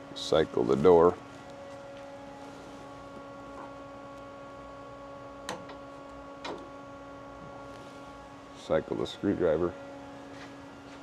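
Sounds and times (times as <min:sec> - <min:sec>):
machine electrical hum: 0:00.0 - 0:11.0.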